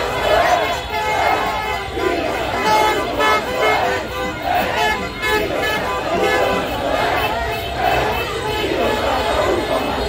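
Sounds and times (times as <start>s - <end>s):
crowd shouting and cheering: 0.0s - 10.0s
horns honking: 0.0s - 10.0s.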